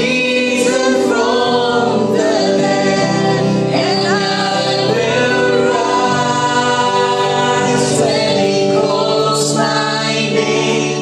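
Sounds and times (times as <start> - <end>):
man and woman singing duet: 0.0 - 11.0.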